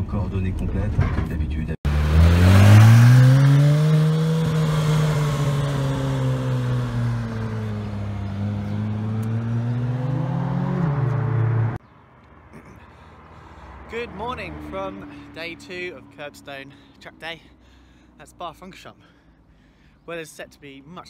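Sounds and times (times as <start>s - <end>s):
car engine revving: 1.9s - 11.8s.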